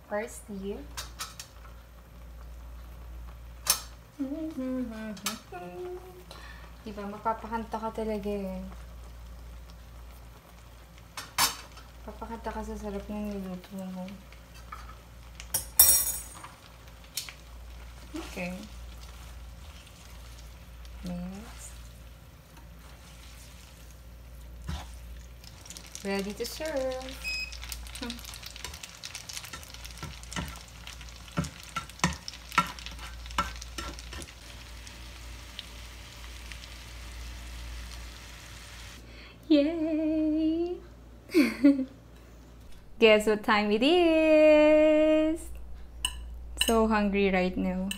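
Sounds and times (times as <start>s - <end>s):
food sizzling in frying pan: 0.8s - 39.0s
tongs clinking against a skillet: 14.5s - 17.4s, 27.2s - 34.3s, 46.0s - 46.9s
tongs clicking against pan: 31.3s - 34.3s, 46.0s - 46.8s.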